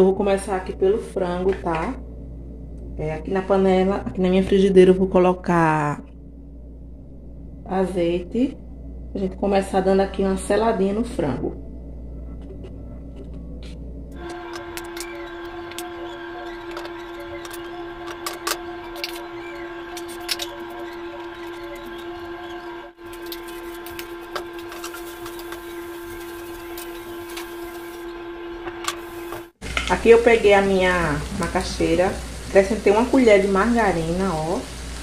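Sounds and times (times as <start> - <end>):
droning hum: 0.0 - 35.0
chicken frying in oil: 14.2 - 28.1, 29.0 - 35.0.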